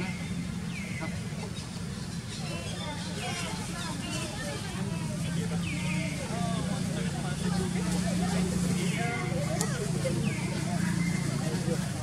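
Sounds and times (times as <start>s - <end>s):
distant indistinct voices: 0.0s - 12.0s.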